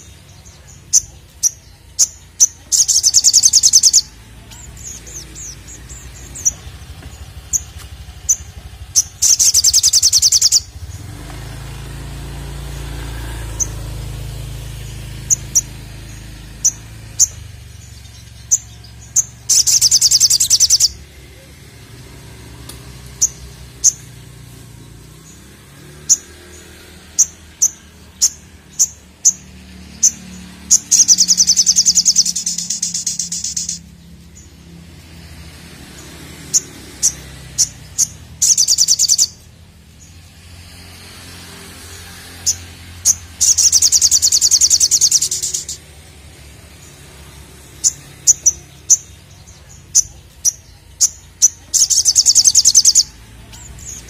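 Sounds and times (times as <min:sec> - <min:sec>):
bird chirping and trilling: 0:00.0 - 0:54.0.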